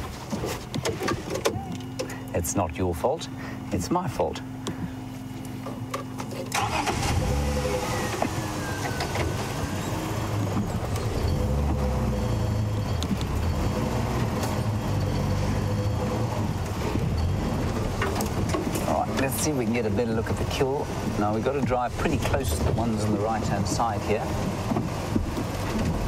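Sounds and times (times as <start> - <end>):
vehicle engine running: 0.0 - 26.0.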